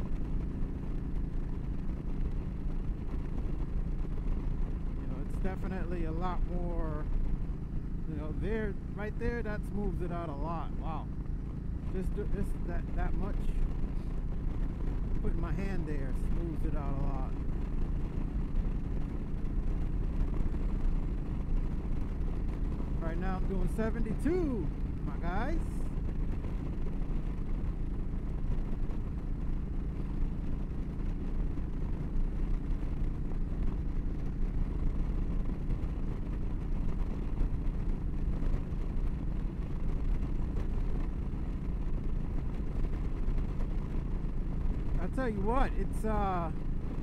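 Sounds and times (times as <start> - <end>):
motorcycle engine at speed: 0.0 - 47.0
wind noise: 0.0 - 47.0.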